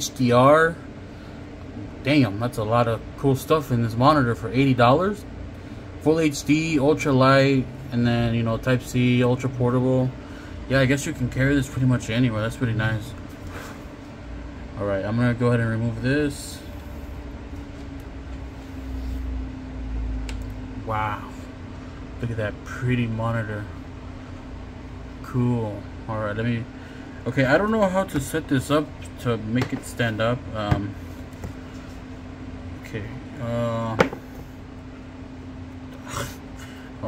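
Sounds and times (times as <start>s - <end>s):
steady hum: 0.0s - 37.0s.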